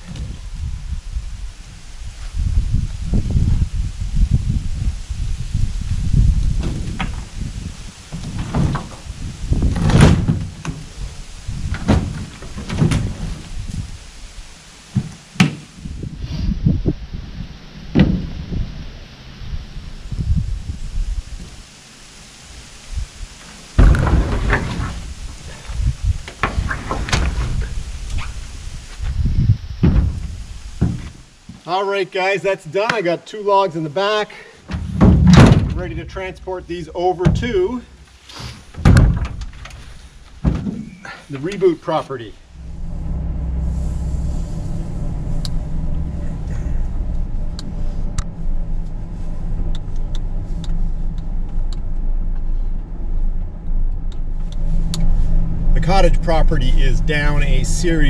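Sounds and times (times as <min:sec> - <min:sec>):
low rumbling: 0:00.0 - 0:31.6, 0:34.7 - 0:58.0.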